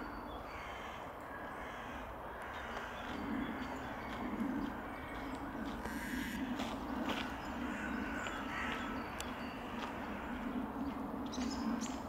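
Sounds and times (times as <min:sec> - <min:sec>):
crows cawing: 0:00.5 - 0:10.8.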